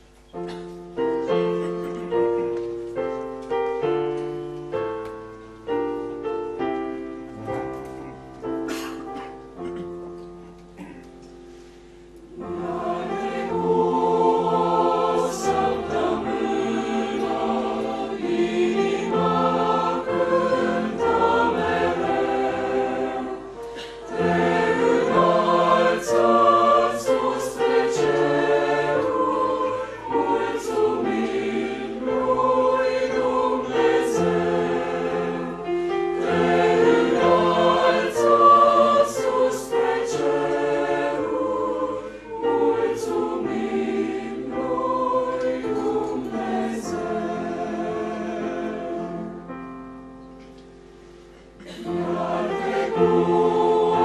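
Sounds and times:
mixed choir singing a hymn: 12.2s - 50.2s, 51.1s - 54.0s.

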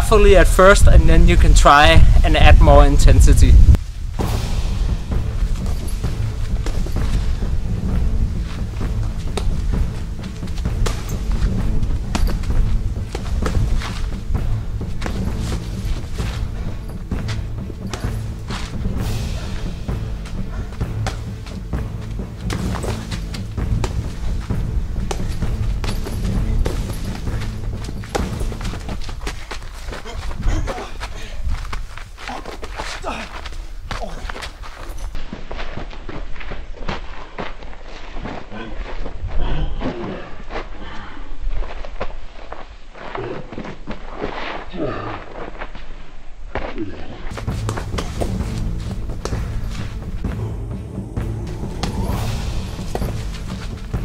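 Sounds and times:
background music: 0.0s - 35.2s, 47.3s - 54.0s.

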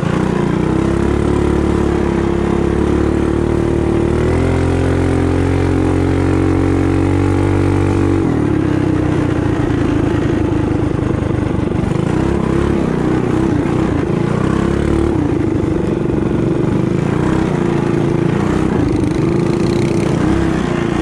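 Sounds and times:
mini bike engine running hard: 0.0s - 21.0s.

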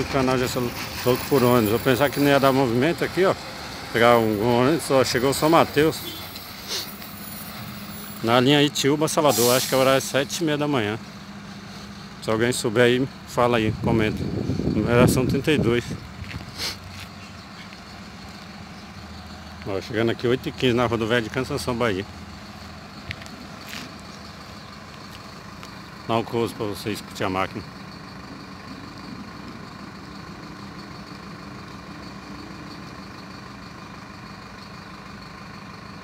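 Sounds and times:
diesel engine idling rumble: 0.0s - 36.0s.

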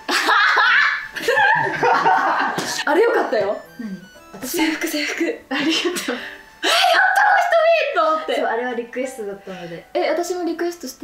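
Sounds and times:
young women laughing: 0.0s - 2.9s.

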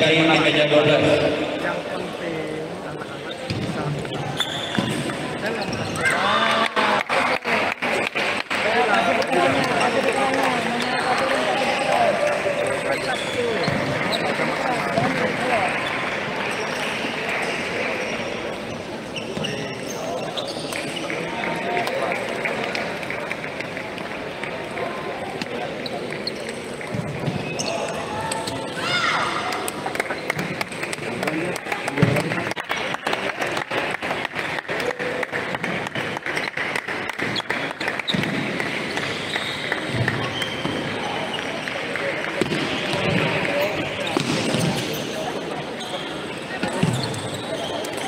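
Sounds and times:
voices chattering in a hall: 0.0s - 48.0s.

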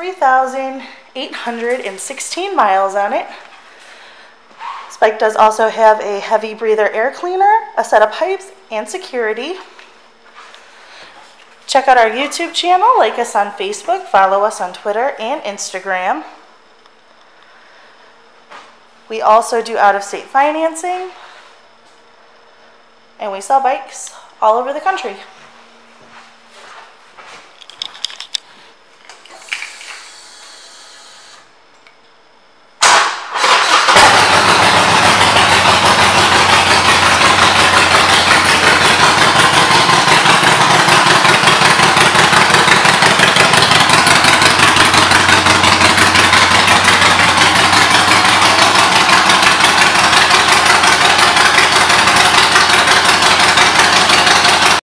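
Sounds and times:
motorcycle engine cranking: 32.8s - 54.8s
motorcycle engine idling: 33.4s - 54.8s.

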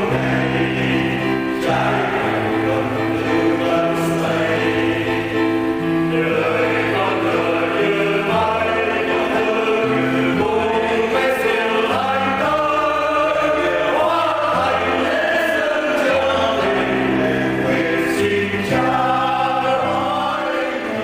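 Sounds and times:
choir singing a hymn: 0.0s - 21.0s
instrumental accompaniment: 0.0s - 21.0s.

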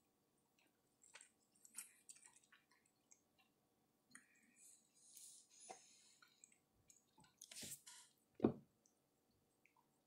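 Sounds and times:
wet chewing: 0.5s - 4.6s.

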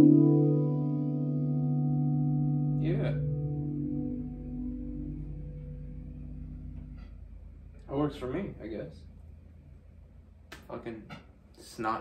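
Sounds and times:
electric guitar chord ringing: 0.0s - 7.9s.

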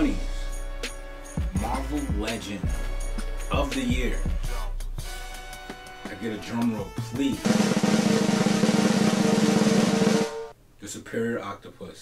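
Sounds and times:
drum roll: 7.3s - 10.5s.

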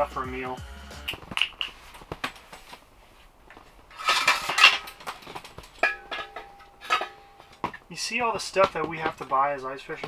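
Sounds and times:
metal clattering and clinking: 3.9s - 7.9s
metal part ringing: 5.8s - 7.7s.

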